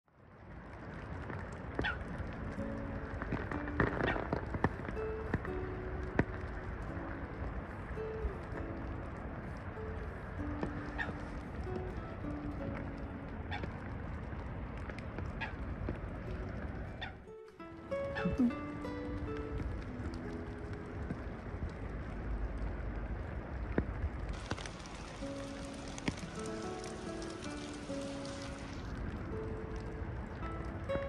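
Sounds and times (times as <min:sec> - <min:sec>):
rain hiss: 0:00.2 - 0:31.0
soft background music: 0:00.2 - 0:31.0.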